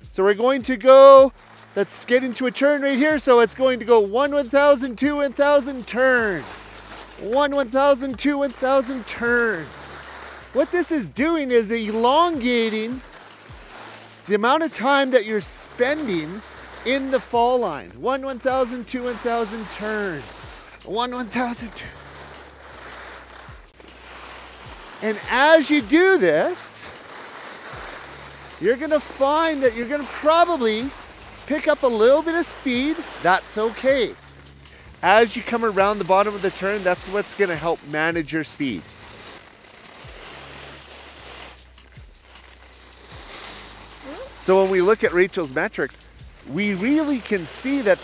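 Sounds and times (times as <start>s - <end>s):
skis scraping over snow: 0.0s - 48.0s.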